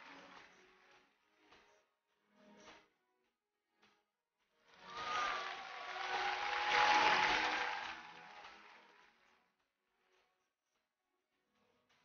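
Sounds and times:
audience applauding: 0.0s - 0.6s, 4.8s - 9.3s
voices cheering: 4.8s - 8.9s.

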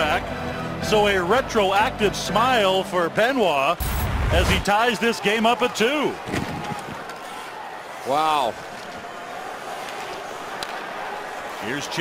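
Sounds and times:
arena crowd murmur: 4.8s - 12.0s.

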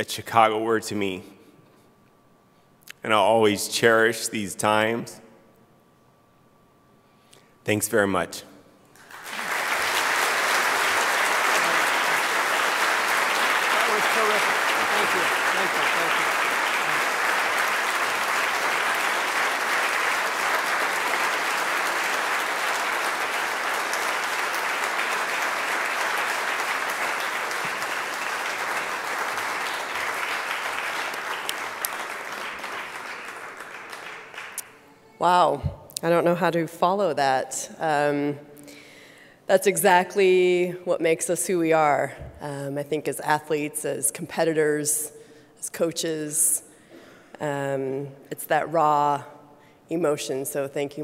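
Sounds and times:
audience applauding: 9.0s - 34.9s.

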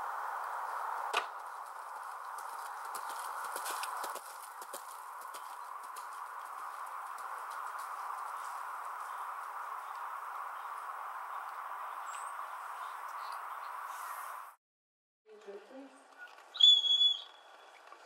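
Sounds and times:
horse hoofbeats on dirt: 1.1s - 10.8s.

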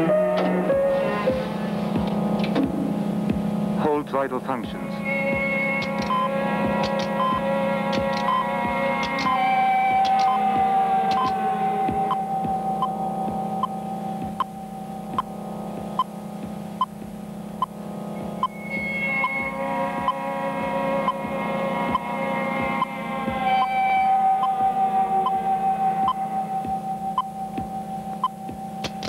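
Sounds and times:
low hum: 0.0s - 29.0s
sustained synthesized tones: 0.0s - 29.0s
sharp clicks: 5.8s - 6.2s, 6.8s - 7.2s, 7.9s - 8.3s, 9.0s - 9.4s, 10.0s - 10.4s.

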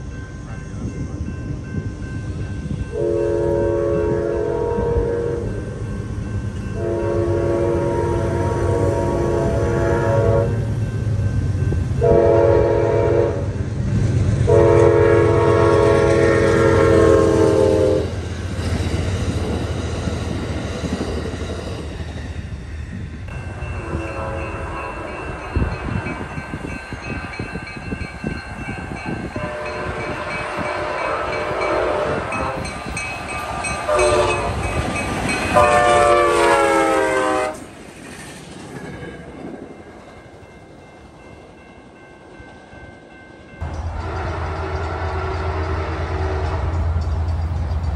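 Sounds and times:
crossing signal bells ringing: 0.0s - 37.4s, 39.2s - 47.9s
train horn blasts: 2.9s - 5.6s, 6.8s - 10.7s, 12.0s - 13.6s, 14.4s - 18.2s, 23.5s - 26.4s, 29.2s - 32.9s, 33.8s - 37.7s, 43.7s - 47.1s.

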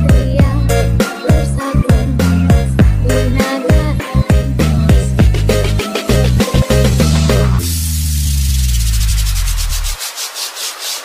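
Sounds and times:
rhythmic noise swishes: 6.0s - 11.0s.

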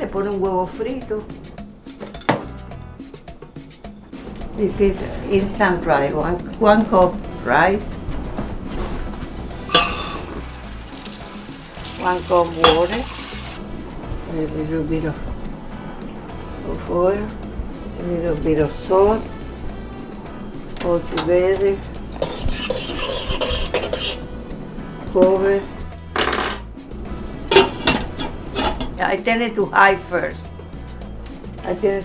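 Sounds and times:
spoon scraping a metal pot: 9.6s - 10.4s, 22.1s - 24.3s, 27.5s - 29.0s
glass clinking on metal pot: 9.7s - 10.4s, 12.6s - 13.1s, 27.5s - 29.0s.

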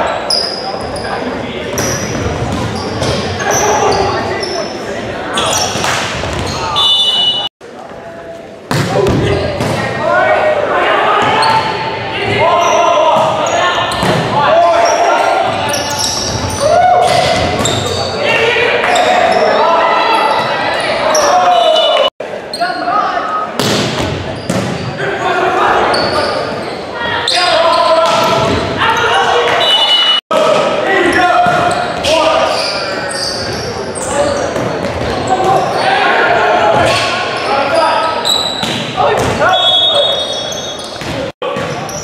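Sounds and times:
people shouting and cheering: 8.9s - 23.6s, 25.0s - 42.0s.

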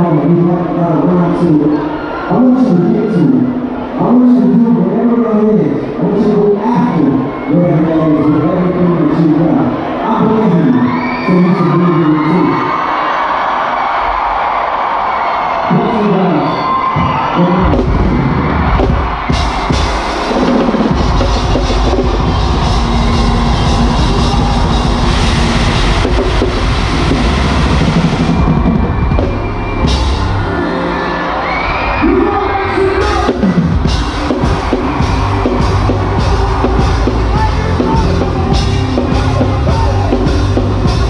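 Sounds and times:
crowd cheering: 0.0s - 41.0s
drum kit driving beat: 17.6s - 30.6s, 32.9s - 41.0s
live band playing: 17.6s - 41.0s.

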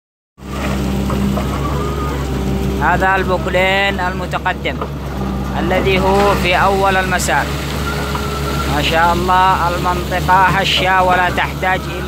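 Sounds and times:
excavator diesel engine running: 0.4s - 12.0s.

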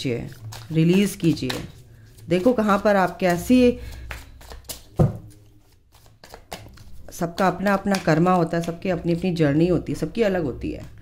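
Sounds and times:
cards being shuffled: 0.2s - 8.8s.

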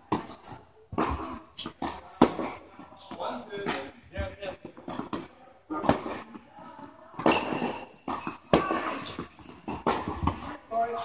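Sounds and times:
tennis ball hit by racket: 7.1s - 10.5s.

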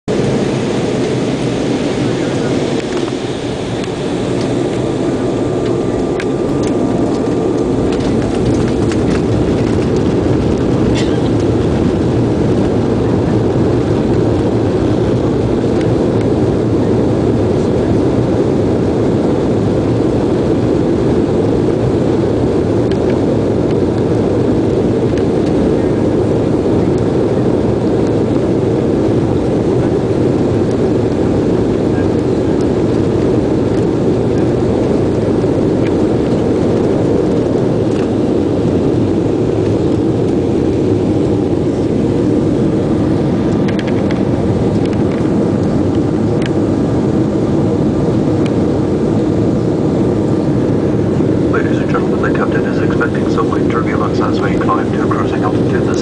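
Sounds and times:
jet engines roaring: 0.1s - 56.0s
wheels rumbling on runway: 0.1s - 56.0s.

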